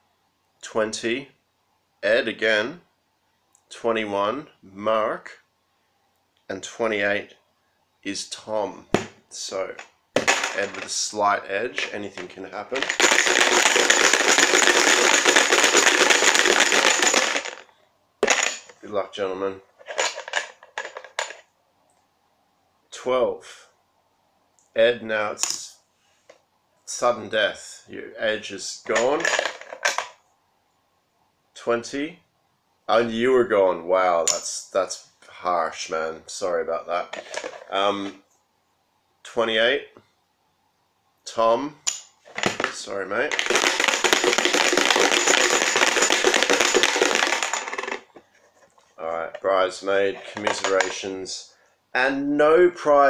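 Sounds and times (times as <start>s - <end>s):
plastic tokens clicking and rattling: 9.7s - 11.0s, 11.8s - 17.6s, 18.2s - 18.8s, 19.8s - 21.4s, 28.9s - 30.2s, 37.1s - 37.7s, 43.3s - 48.2s, 50.2s - 51.0s.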